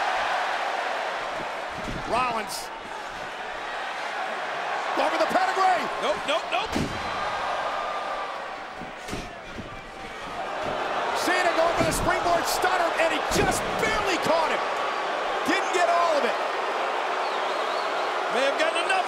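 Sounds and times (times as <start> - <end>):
arena crowd cheering and shouting: 0.0 - 19.0
heavy thuds of bodies in ring: 0.2 - 3.9, 6.5 - 14.0.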